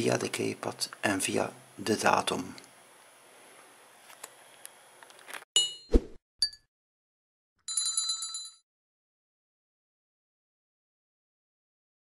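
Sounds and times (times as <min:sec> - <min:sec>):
small bell ringing rapidly: 0:07.7 - 0:08.6.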